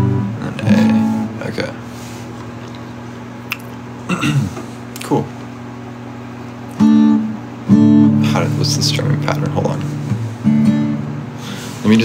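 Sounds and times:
acoustic guitar chord strummed: 0.0 - 1.8, 6.6 - 12.0.

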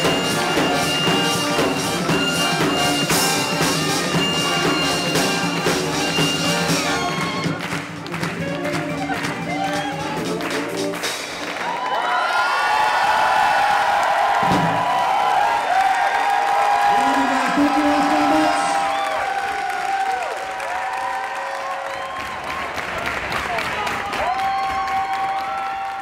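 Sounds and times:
swing band music: 0.0 - 11.8
crowd cheering and screaming: 11.4 - 26.0.

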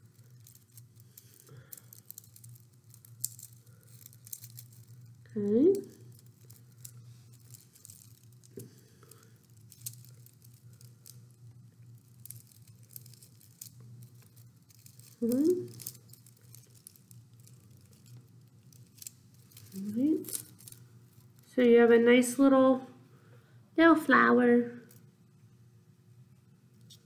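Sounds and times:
steady low hum: 0.0 - 27.0
paper rustling and crinkling: 11.9 - 21.4.

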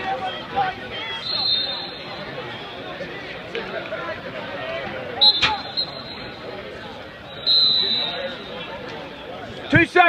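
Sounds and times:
babble of gym crowd: 0.0 - 10.0
referee's whistle blasts: 1.0 - 2.8, 5.2 - 6.5, 7.3 - 8.7.

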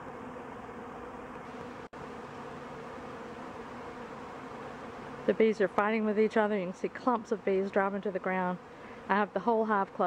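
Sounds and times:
honey bees buzzing: 0.0 - 10.0.

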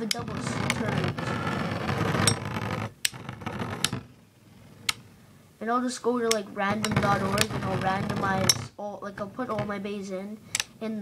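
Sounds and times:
spinning tops whirring and rattling: 0.0 - 4.1, 6.7 - 8.7.

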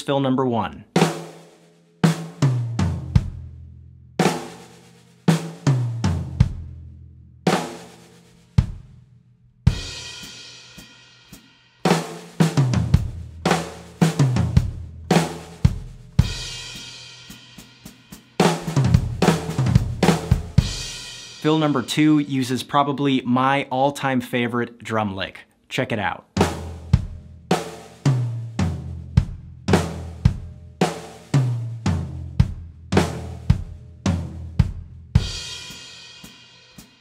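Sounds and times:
drum fill: 1.0 - 3.4, 11.9 - 17.0, 17.6 - 22.8, 26.4 - 36.4.

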